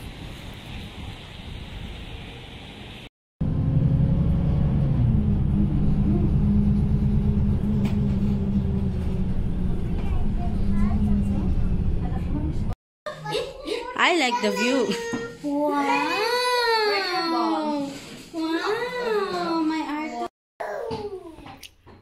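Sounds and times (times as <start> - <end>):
bus engine drone: 0.1 - 12.8.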